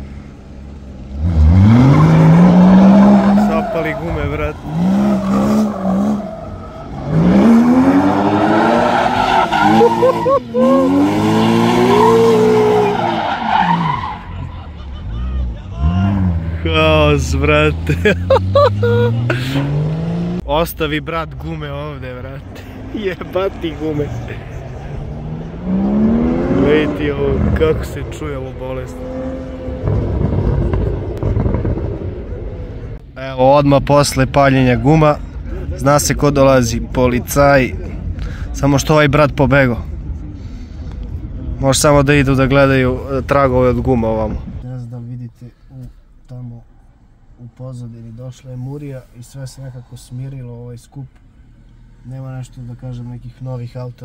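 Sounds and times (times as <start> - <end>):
car engine revving hard: 1.1 - 6.2, 7.0 - 13.1, 17.6 - 20.4, 25.0 - 28.2
tires squealing on pavement: 1.3 - 16.6.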